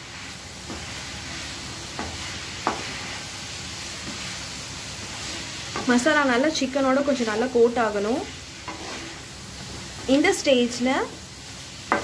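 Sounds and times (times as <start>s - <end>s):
wooden spatula stirring: 0.0s - 10.2s
food sizzling in a pan: 0.0s - 12.0s.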